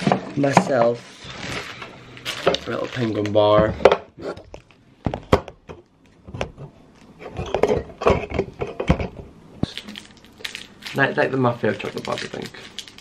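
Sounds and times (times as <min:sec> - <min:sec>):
plastic wrapper crinkling: 0:01.4 - 0:03.5, 0:09.6 - 0:13.0.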